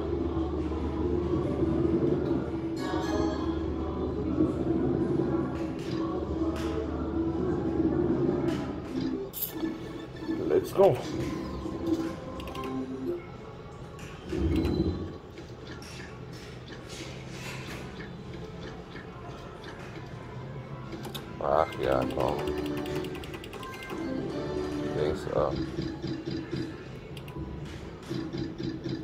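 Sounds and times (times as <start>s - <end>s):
slot machine music and jingles: 9.0s - 13.2s, 21.0s - 26.8s.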